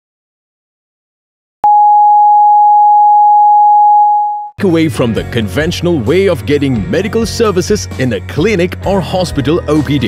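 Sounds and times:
electronic test tone: 1.6s - 4.6s.

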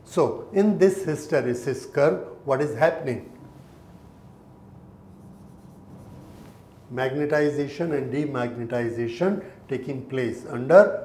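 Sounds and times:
low steady hum: 0.0s - 11.0s
marker pen writing on whiteboard: 5.1s - 6.7s.

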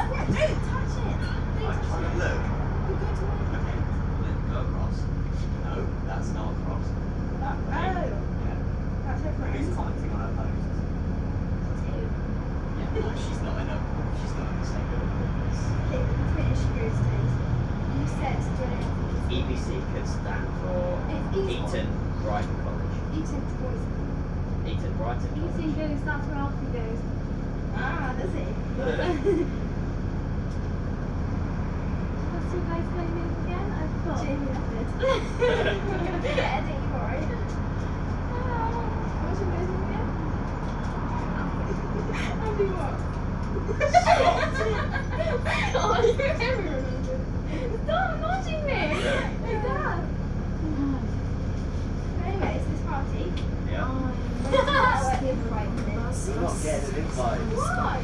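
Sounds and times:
bus diesel engine idling: 0.0s - 58.0s
faint passenger voices: 0.0s - 58.0s.

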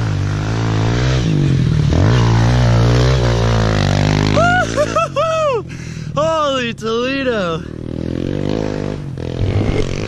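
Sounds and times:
motorcycle engine revving: 0.0s - 5.1s, 7.4s - 10.0s.

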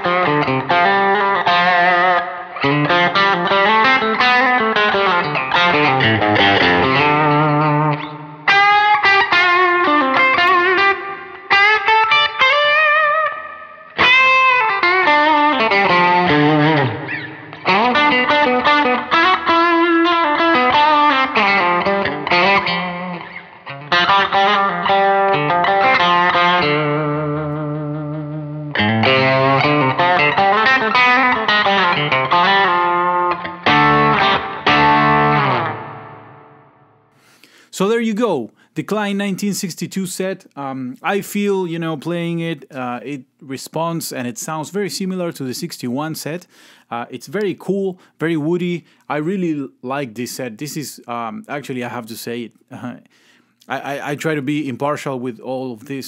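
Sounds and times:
overdriven electric guitar lead: 0.0s - 37.6s.

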